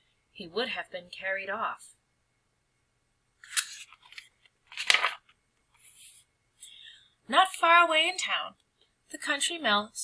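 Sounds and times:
page flipping swish: 0:03.4 - 0:05.2
paper rustling: 0:03.4 - 0:05.4.

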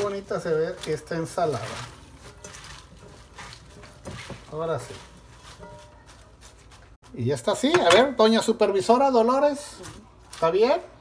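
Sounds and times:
salad leaves rustling in bowl: 0:00.0 - 0:07.2, 0:09.3 - 0:10.9.

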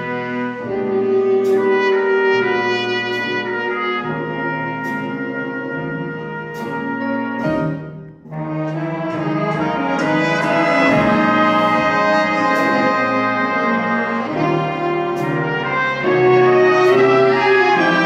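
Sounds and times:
jazz big band playing: 0:00.0 - 0:18.0.

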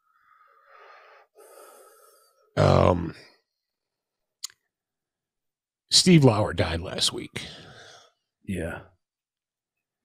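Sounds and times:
man breathing: 0:00.0 - 0:02.6, 0:07.4 - 0:08.3.

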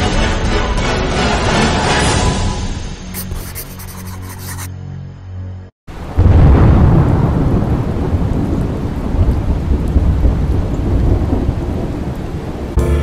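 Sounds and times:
music: 0:00.0 - 0:03.2, 0:12.8 - 0:13.0
steady rain: 0:05.9 - 0:12.8
thunder rumbling: 0:06.0 - 0:12.8.

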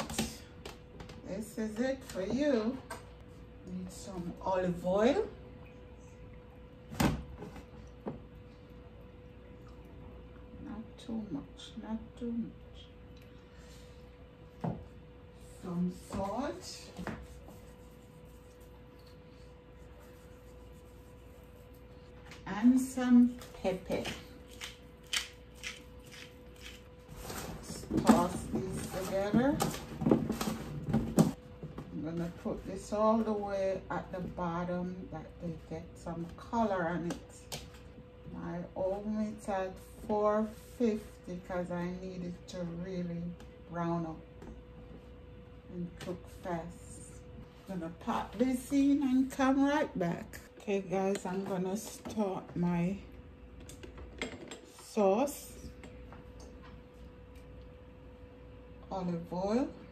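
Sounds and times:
faint steady hum: 0:00.0 - 0:59.9
pepper mill grinding: 0:24.5 - 0:26.9.

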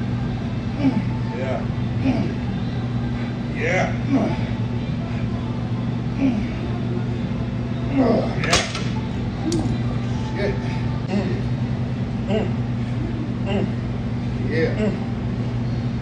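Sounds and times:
low hum: 0:00.0 - 0:16.0
person grunting and breathing hard: 0:12.2 - 0:15.1.

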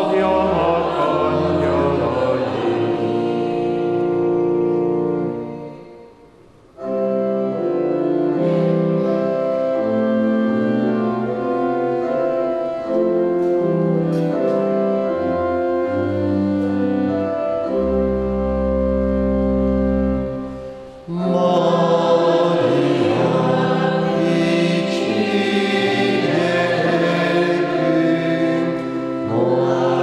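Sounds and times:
choir singing a hymn: 0:00.0 - 0:06.1, 0:21.1 - 0:30.0
held instrumental chords: 0:00.0 - 0:30.0.

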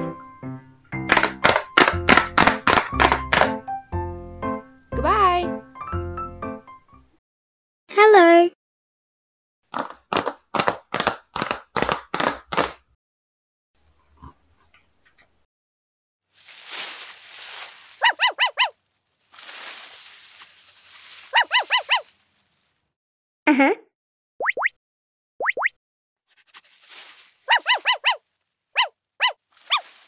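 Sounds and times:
quick high chirps: 0:18.0 - 0:18.7, 0:21.3 - 0:22.1, 0:27.5 - 0:28.2.

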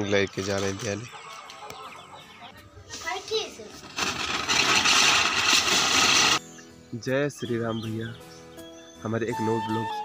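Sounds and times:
faint background music: 0:00.0 - 0:04.2, 0:06.4 - 0:10.0
firecracker hissing: 0:03.8 - 0:06.4.

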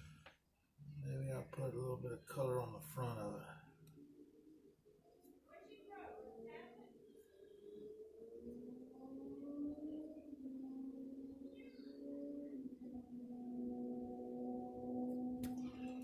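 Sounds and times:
slow melody of held notes: 0:08.9 - 0:16.0.

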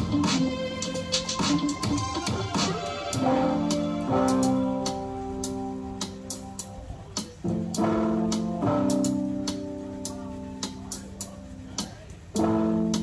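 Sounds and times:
held ringing chords: 0:00.0 - 0:13.0.

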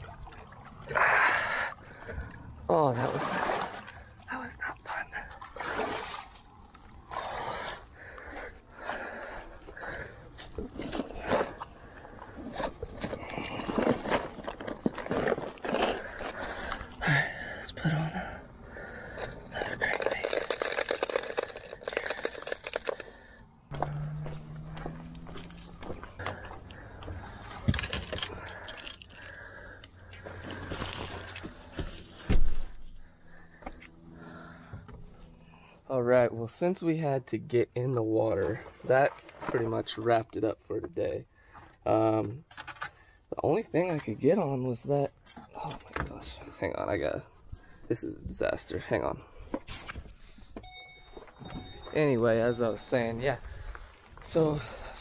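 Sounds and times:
person breathing: 0:07.2 - 0:10.5, 0:16.0 - 0:20.5, 0:21.2 - 0:23.7, 0:24.4 - 0:35.9, 0:53.4 - 0:55.0
steady low hum: 0:23.1 - 0:36.0
footsteps on grass: 0:23.7 - 0:26.7
clothes and gear rustling: 0:30.2 - 0:32.8.

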